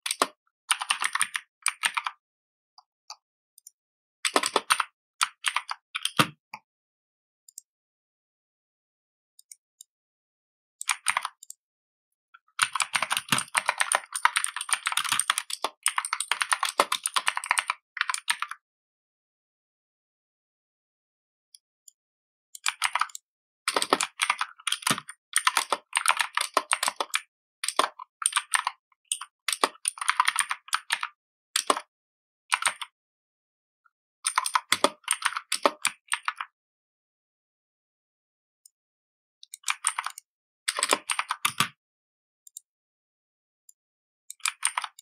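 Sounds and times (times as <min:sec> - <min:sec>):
computer keyboard typing: 0:00.0 - 0:02.2, 0:04.3 - 0:06.4, 0:10.8 - 0:11.6, 0:12.6 - 0:18.6, 0:22.6 - 0:31.9, 0:32.5 - 0:32.9, 0:34.3 - 0:36.5, 0:39.4 - 0:41.8, 0:44.3 - 0:45.0.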